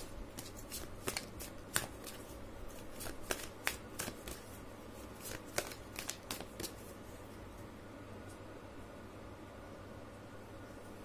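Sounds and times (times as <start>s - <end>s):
cards being shuffled: 0.0s - 7.0s.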